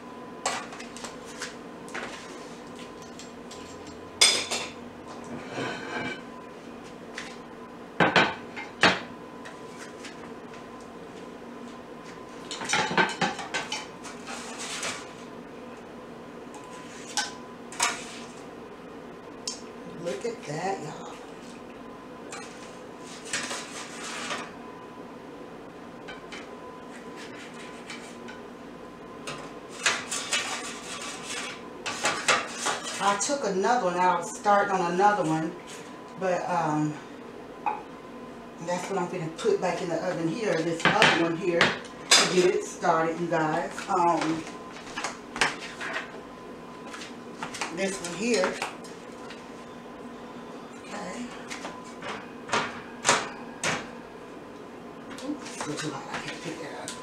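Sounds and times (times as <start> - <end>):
faint steady hum: 0.0 - 57.0
utensils scraping a metal pan: 29.8 - 33.2.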